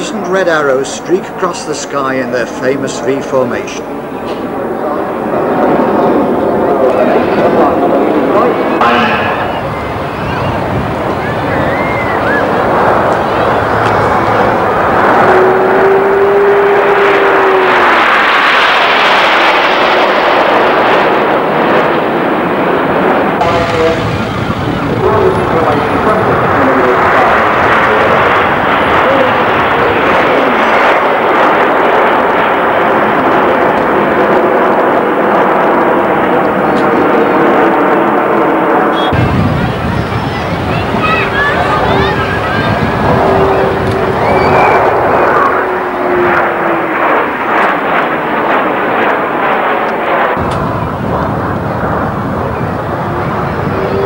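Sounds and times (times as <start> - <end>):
jets flying past: 0.0 - 54.0
steady whine: 0.0 - 54.0.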